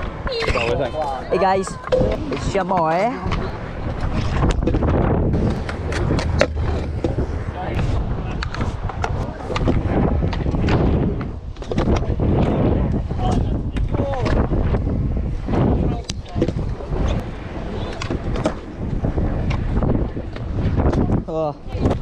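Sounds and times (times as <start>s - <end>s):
scooter wheels rolling on concrete: 0.0s - 22.0s.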